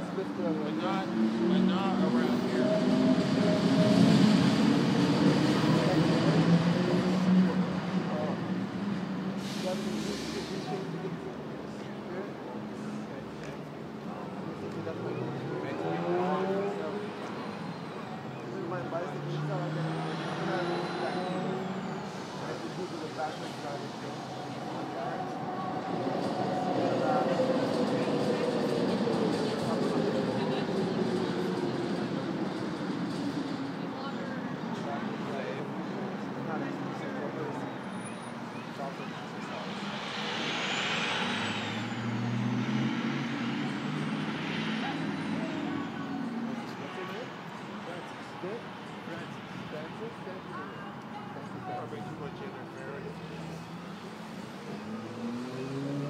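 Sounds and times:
muffled voices: 0.0 - 56.0
passing vehicle hum and whine: 0.0 - 56.0.

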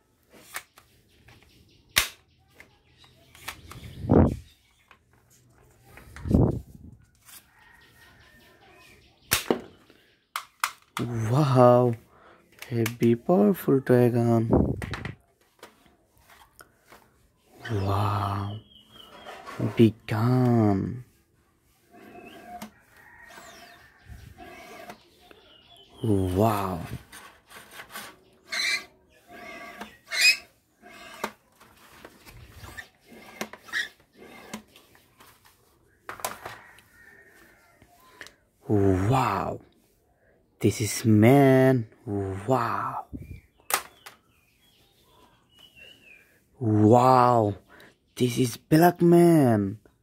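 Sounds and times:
plastic parts clicking: 0.4 - 3.9, 10.3 - 11.1.

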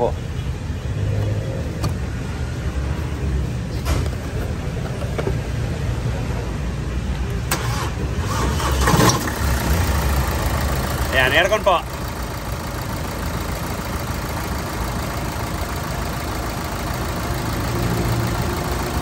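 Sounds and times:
car engine idling: 1.7 - 19.0.

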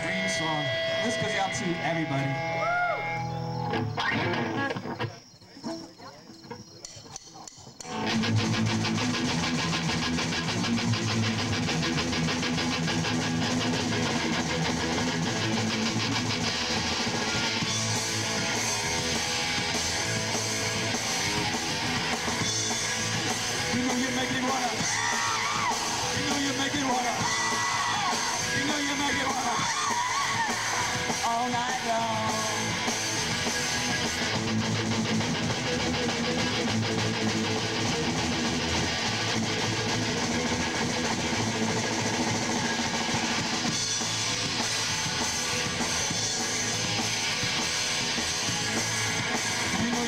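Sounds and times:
live rock band playing: 0.0 - 4.9, 7.8 - 50.0.

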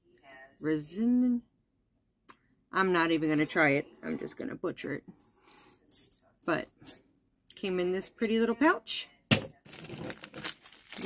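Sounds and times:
plastic packaging crinkling: 9.6 - 11.0.

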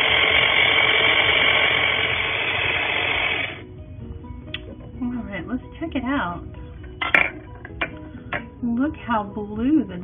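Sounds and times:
toy blender running: 0.0 - 3.6.

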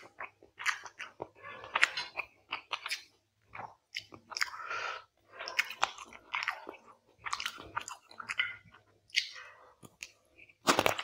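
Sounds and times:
mouth and teeth clicks: 0.0 - 4.7, 5.3 - 11.0
close chewing: 0.0 - 11.0.

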